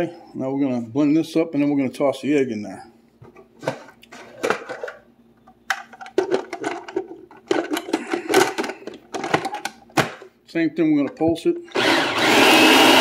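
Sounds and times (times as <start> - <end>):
food processor clattering: 11.7 - 13.0
food processor motor pulsing: 11.7 - 13.0.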